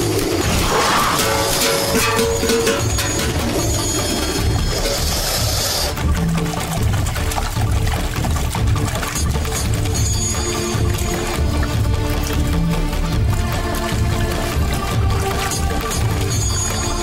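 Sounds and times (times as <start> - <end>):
dramatic score with pulsing beat: 0.0 - 17.0.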